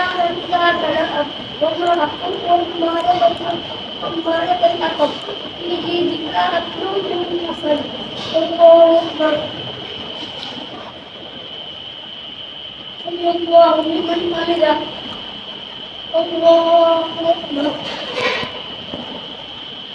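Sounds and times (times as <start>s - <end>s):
boy chanting recitation: 0.0s - 9.7s, 13.0s - 15.2s, 16.0s - 18.6s
high-pitched whine: 0.0s - 19.9s.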